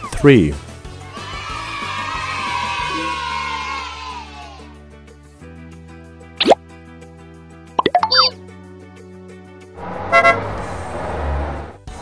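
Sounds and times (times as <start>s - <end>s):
children's background music: 0.9s - 4.8s, 7.8s - 8.4s
popping plops: 6.4s - 6.6s, 7.8s - 8.3s
cartoon up-and-down whistle: 7.8s - 8.3s.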